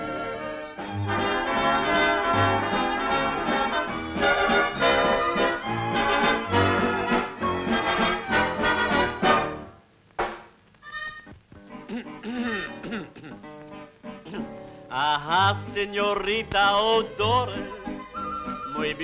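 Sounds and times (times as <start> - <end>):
orchestral music with brass: 0.0 - 9.6
sharp knock: 10.2 - 10.6.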